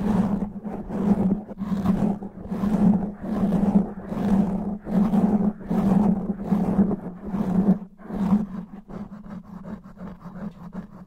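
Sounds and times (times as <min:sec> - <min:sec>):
fingernails scratching microphone windscreen: 0:00.0 - 0:11.0.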